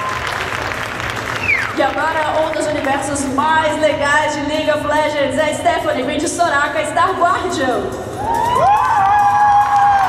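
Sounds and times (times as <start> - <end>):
audience cheering: 0.0 - 1.8, 8.2 - 10.0.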